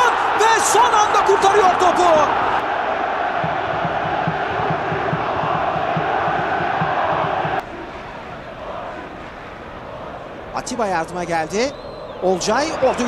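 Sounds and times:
stadium crowd chanting: 0:00.0 - 0:11.2
steady low beat: 0:03.4 - 0:07.6.

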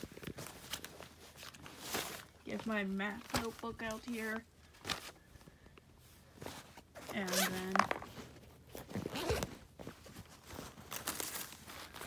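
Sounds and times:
backpack zipper and fabric rustling: 0:00.0 - 0:05.2, 0:06.2 - 0:12.0.

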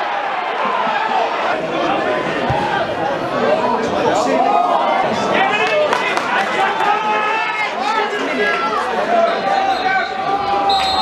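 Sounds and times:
people shouting: 0:06.5 - 0:11.0
referee's whistle: 0:09.2 - 0:11.0.

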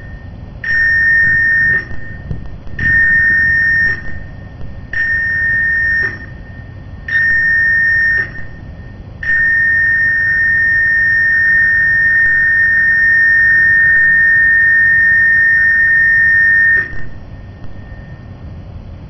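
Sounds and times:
high-pitched electronic alarm tone: 0:00.0 - 0:18.4.

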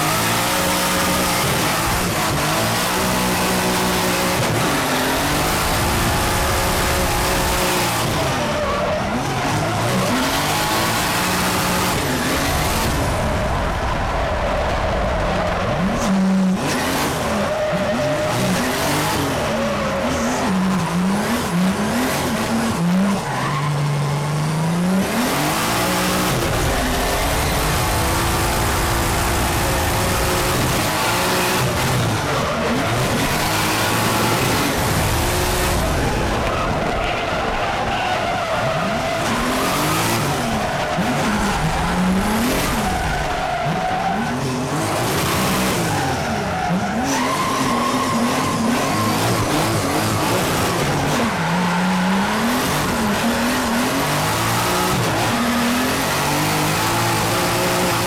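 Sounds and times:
car engine revving: 0:00.0 - 0:58.0
tyres sliding and squealing: 0:30.8 - 0:52.1.

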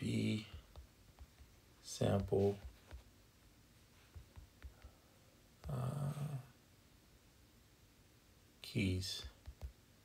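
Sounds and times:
man saying uh: 0:05.7 - 0:06.6.

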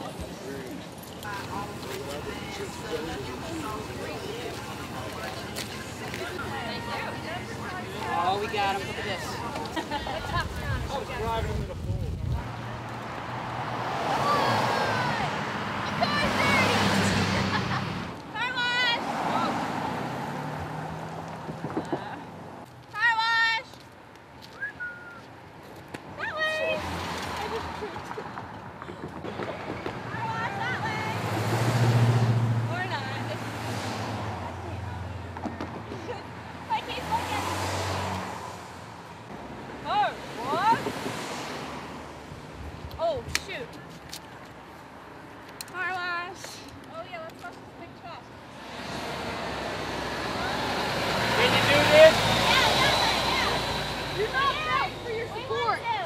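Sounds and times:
cars passing: 0:00.0 - 0:56.0
car driving past: 0:12.5 - 0:18.2, 0:19.0 - 0:21.6, 0:29.2 - 0:35.9, 0:36.6 - 0:42.2, 0:48.5 - 0:55.7.

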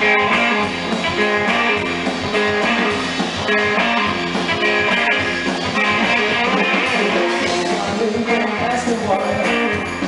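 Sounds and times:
drum kit: 0:00.0 - 0:10.0
electric guitar strumming: 0:00.0 - 0:10.0.

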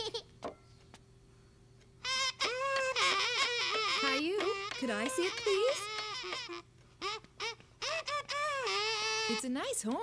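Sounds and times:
toy horn honking: 0:02.0 - 0:09.6.

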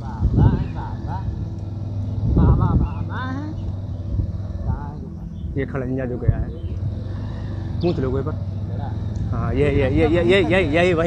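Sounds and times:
motorcycle engine humming: 0:00.0 - 0:11.0.

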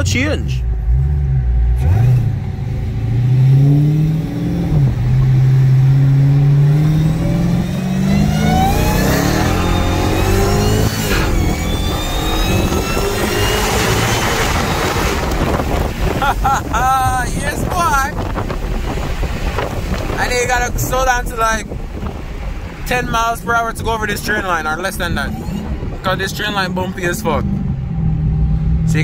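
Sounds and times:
car engine accelerating hard: 0:00.7 - 0:29.0
wind noise: 0:03.2 - 0:29.0.

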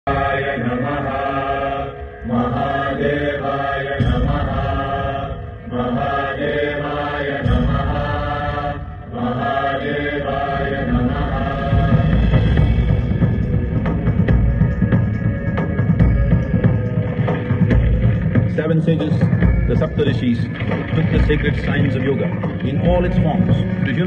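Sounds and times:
music backing: 0:00.1 - 0:24.0
voices chanting: 0:00.1 - 0:24.0.

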